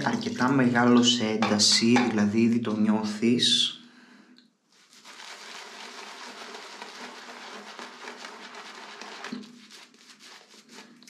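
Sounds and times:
shaving brush scrubbing lather: 0:04.7 - 0:11.0.

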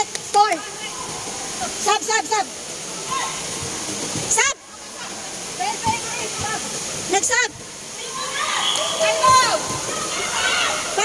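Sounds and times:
steady rushing hiss: 0:00.0 - 0:11.0.

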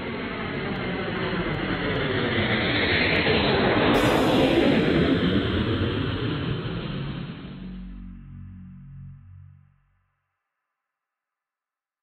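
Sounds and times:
jet engine roar: 0:00.4 - 0:08.6.

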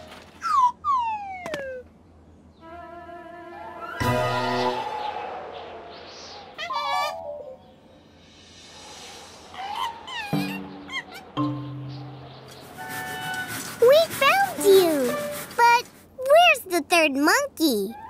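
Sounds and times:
light background music: 0:09.5 - 0:13.6
cartoon monkeys chattering: 0:09.6 - 0:11.6.

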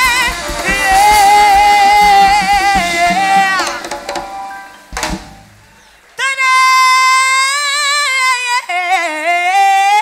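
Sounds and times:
live latin band playing: 0:00.0 - 0:06.0.

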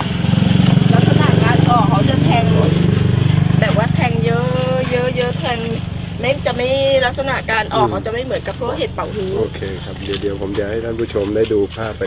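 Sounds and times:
small engine humming: 0:00.0 - 0:12.0
person talking: 0:07.4 - 0:08.9.

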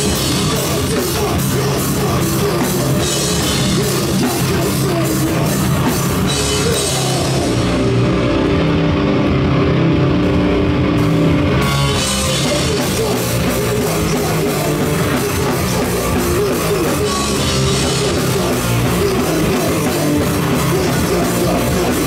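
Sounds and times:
hardcore band playing live: 0:00.0 - 0:22.0
sustained guitar chords: 0:00.0 - 0:22.0.

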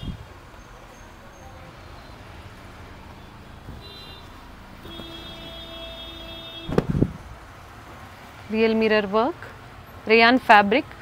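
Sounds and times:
fabric rustle and bump: 0:06.6 - 0:08.1.

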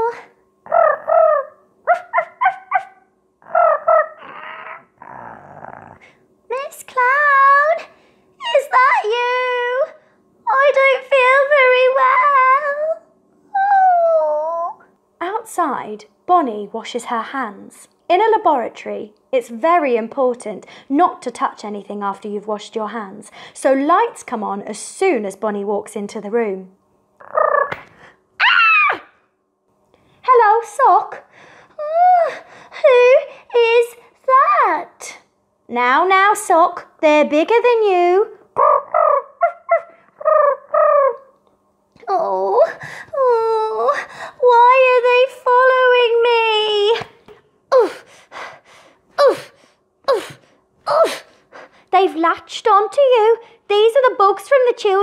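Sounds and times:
woman making squeaky yips: 0:28.4 - 0:29.1.

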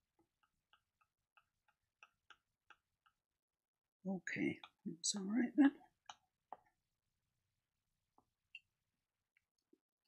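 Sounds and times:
faint light ticks of paint mixing: 0:00.0 - 0:04.9, 0:05.8 - 0:07.0.

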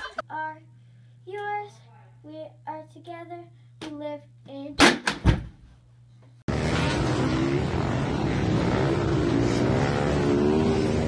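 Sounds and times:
dirt bike engine revving: 0:06.5 - 0:11.0.

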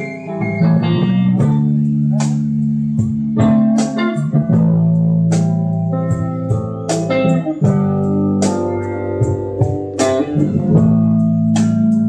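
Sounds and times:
guitar and bass notes: 0:00.0 - 0:12.0.

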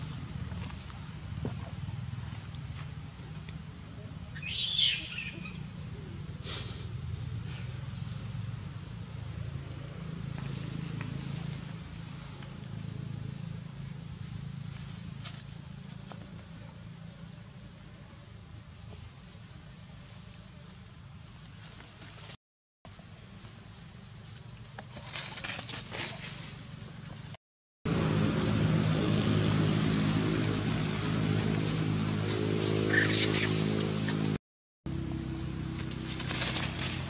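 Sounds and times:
low outdoor hum: 0:00.0 - 0:37.0
monkey squealing: 0:04.4 - 0:05.7, 0:32.9 - 0:33.6.

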